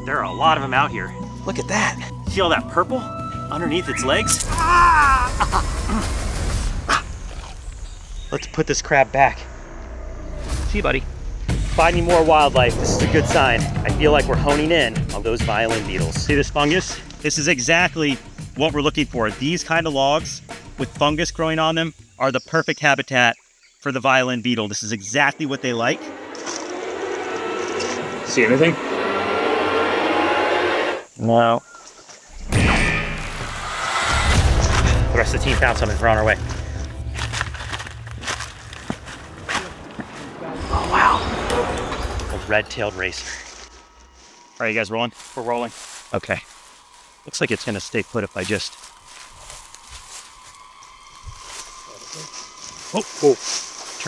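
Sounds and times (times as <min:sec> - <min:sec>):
steady outdoor hiss: 0:03.7 - 0:28.8, 0:31.0 - 0:32.4, 0:42.1 - 0:54.0
insect drone: 0:03.8 - 0:18.6, 0:22.9 - 0:54.0.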